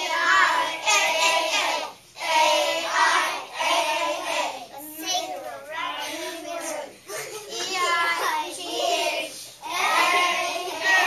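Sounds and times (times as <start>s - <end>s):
children chanting in unison: 0.0s - 4.9s, 7.7s - 11.0s.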